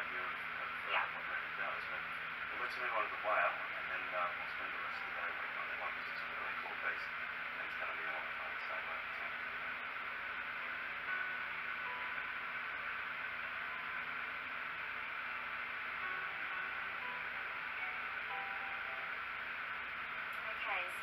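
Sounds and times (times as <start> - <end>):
faint low hum: 0.0 - 21.0.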